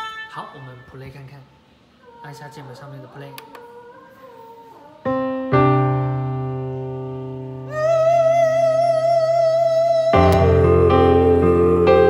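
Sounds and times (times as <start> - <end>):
keyboard chords: 5.1 - 12.0.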